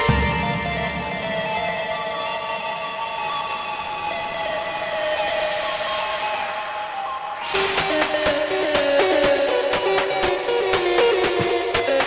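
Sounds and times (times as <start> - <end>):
hissing noise layer: 0.0 - 11.8.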